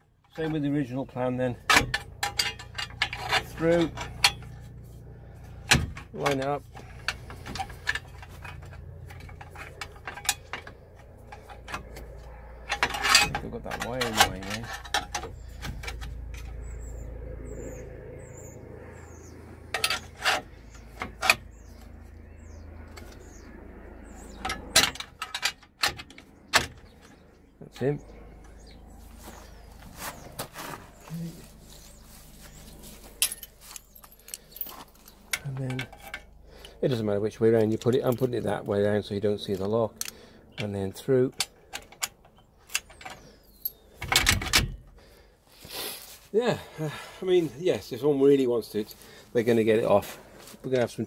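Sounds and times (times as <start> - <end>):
metal hitch lock clicking: 1.6 - 4.6
metal lock clicking and scraping: 1.6 - 4.6, 5.6 - 16.6, 19.7 - 21.7, 41.3 - 44.9.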